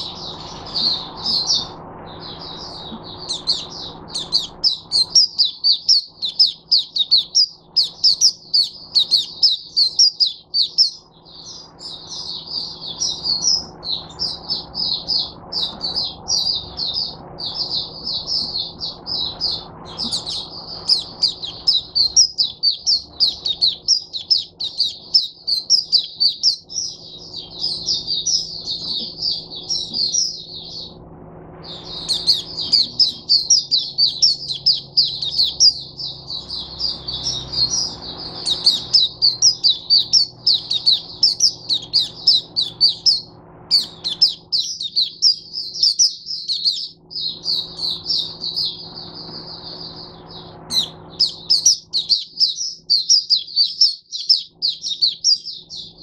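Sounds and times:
bird warbling song: 0:00.0 - 0:31.0, 0:31.6 - 0:56.0
faint steady hum: 0:00.0 - 0:56.0.

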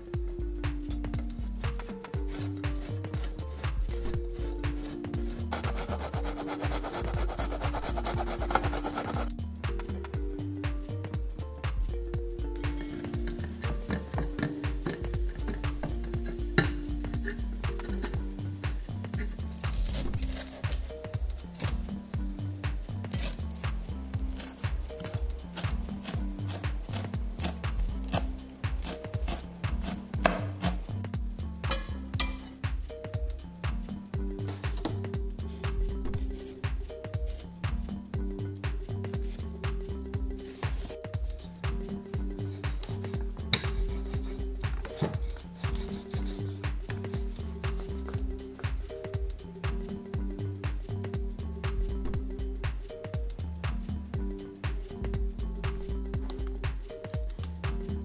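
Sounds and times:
background music with steady beat: 0:00.0 - 0:58.0
sausage rasping on box grater: 0:04.8 - 0:09.3, 0:23.8 - 0:30.9, 0:43.6 - 0:46.6
knife chopping on plastic board: 0:24.7 - 0:30.8.

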